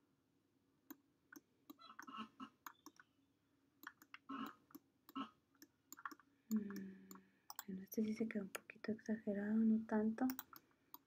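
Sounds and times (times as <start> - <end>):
mouse and keyboard clicks: 0.9 - 3.1, 3.8 - 8.7, 10.2 - 11.0.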